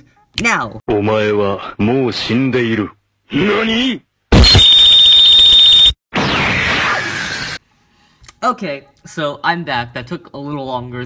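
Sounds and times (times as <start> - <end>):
loud noisy falling sound: 6.1 - 7.6.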